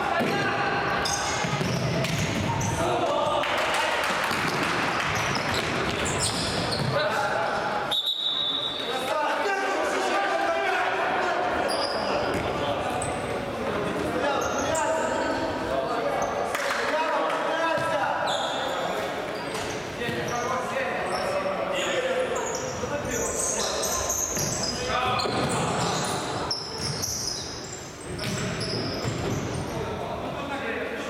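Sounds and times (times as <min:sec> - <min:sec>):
shoes squeaking on court: 0:01.0 - 0:02.8, 0:05.1 - 0:07.2, 0:18.2 - 0:29.9.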